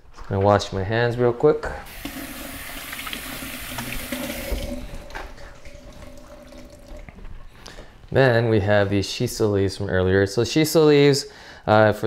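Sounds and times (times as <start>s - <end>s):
hands washing under water: 1.9s - 7.5s
tap water running: 1.9s - 7.5s.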